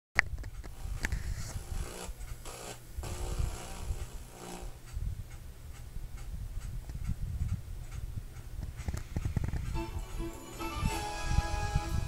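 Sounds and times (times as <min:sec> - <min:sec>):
faint hum: 0:00.3 - 0:12.0
scattered clicks: 0:04.8 - 0:09.8.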